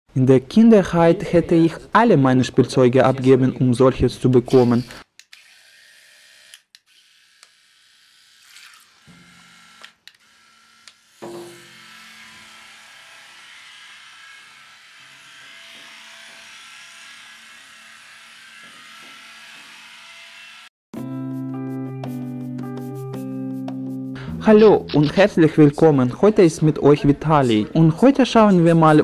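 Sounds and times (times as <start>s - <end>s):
small electric motor humming: 4.5s - 20.7s.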